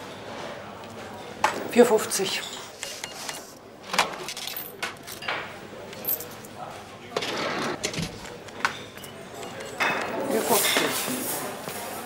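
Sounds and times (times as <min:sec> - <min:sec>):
low background noise: 0:00.0 - 0:12.0
plates and cutlery clinking: 0:08.6 - 0:12.0.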